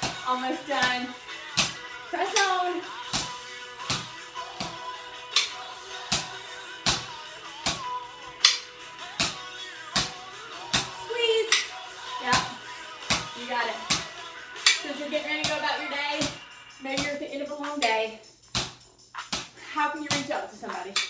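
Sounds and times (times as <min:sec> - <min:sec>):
song with singing: 0:00.0 - 0:18.1.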